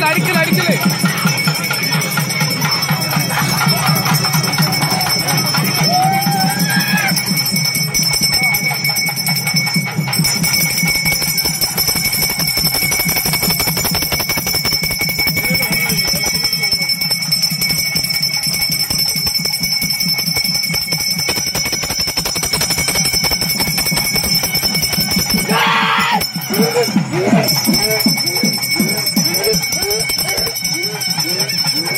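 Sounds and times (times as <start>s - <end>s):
hand bell ringing rapidly: 0.0s - 31.9s.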